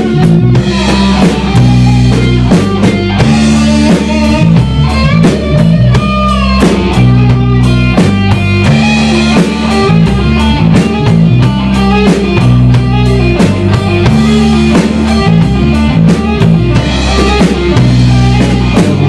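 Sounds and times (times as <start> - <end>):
bass guitar: 0.0 - 19.0
drum kit steady beat: 0.0 - 19.0
electric guitar: 0.0 - 19.0.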